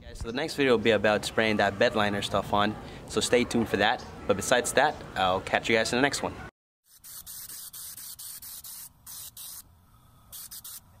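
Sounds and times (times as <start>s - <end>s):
spray gun hissing bursts: 6.9s - 9.6s, 10.3s - 11.0s.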